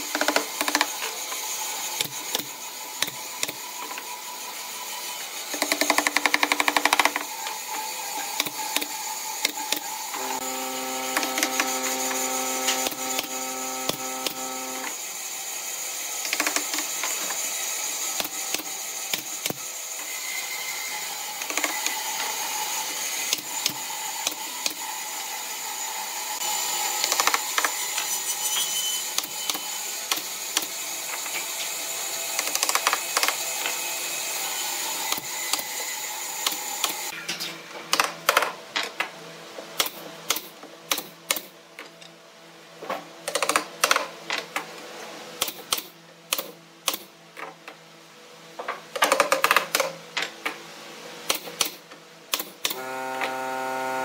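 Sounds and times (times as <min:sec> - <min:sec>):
pneumatic nail gun shots: 0:11.1 - 0:14.9, 0:18.2 - 0:19.6, 0:39.8 - 0:41.5, 0:45.4 - 0:47.1, 0:51.3 - 0:52.9.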